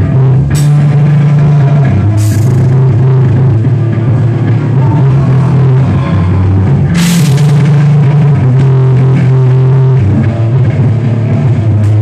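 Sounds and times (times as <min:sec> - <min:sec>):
metal band playing loudly: 0:00.0 - 0:12.0
cymbal crash: 0:06.9 - 0:08.3.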